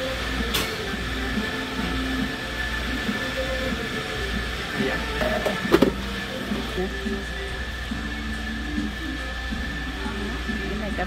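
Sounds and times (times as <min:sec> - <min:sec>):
thin high whine: 0:00.0 - 0:11.0.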